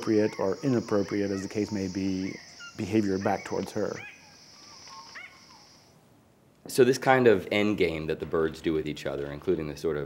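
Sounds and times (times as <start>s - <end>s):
whistled bird notes: 0.0s - 5.9s
high insect buzz: 0.0s - 6.0s.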